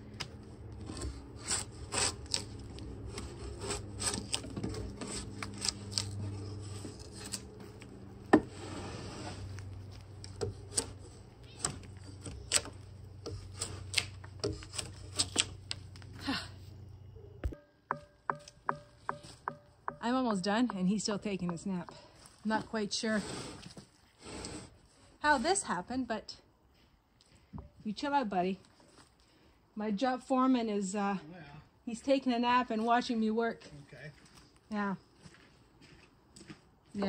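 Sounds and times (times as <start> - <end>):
drawknife scraping wood: 0.8 - 7.6, 8.4 - 15.8
sharp knock: 17.9 - 20.1.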